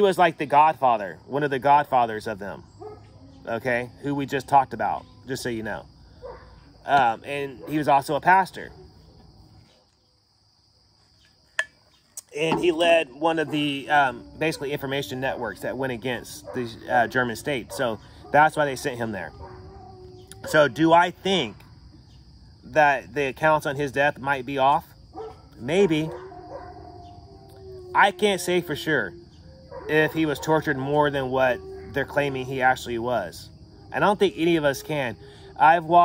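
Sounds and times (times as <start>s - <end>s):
crickets chirping: 0.0s - 36.0s
high insect drone: 0.0s - 36.0s
dog howling faintly: 2.5s - 9.3s, 12.4s - 21.6s, 25.2s - 36.0s.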